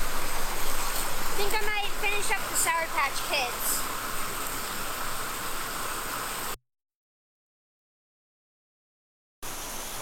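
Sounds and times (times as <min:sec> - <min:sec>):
small waterfall rushing: 0:00.0 - 0:06.6, 0:09.4 - 0:10.0.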